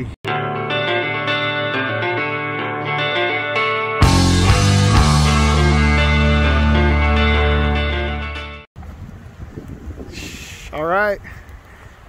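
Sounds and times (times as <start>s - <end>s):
rock intro music: 0.3s - 8.7s
wind rumble on microphone: 8.8s - 12.0s.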